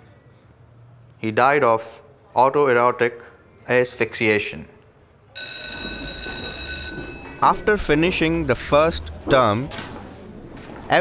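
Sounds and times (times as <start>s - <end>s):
electric bell ringing: 5.4s - 8.6s.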